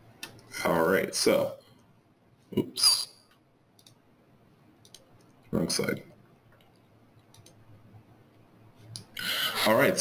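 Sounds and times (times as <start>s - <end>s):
faint computer mouse clicks: 3.8s - 4.0s, 4.8s - 5.4s, 6.6s - 7.6s.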